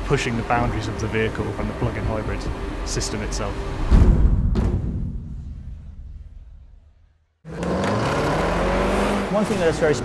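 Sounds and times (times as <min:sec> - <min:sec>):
deep boom: 0:03.8 - 0:07.3.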